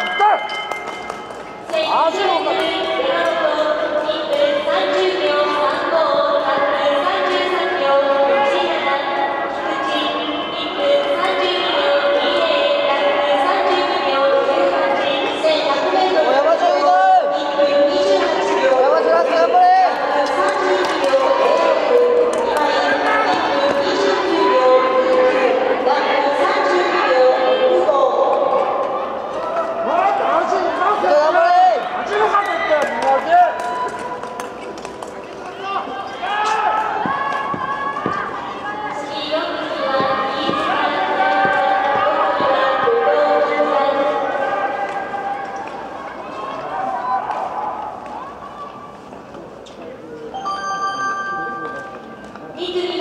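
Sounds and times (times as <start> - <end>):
crowd murmur: 1.0 - 33.2, 33.8 - 53.0
voices shouting and talking: 35.2 - 49.1.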